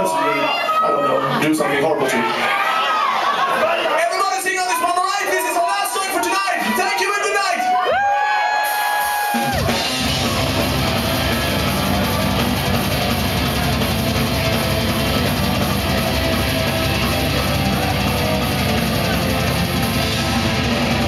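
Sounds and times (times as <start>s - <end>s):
drums: 4.1s - 21.0s
metal band playing live: 8.6s - 21.0s
distorted electric guitars: 9.0s - 21.0s.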